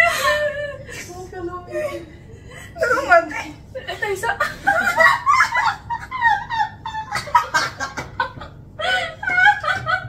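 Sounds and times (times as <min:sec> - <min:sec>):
women laughing: 0:00.0 - 0:10.0.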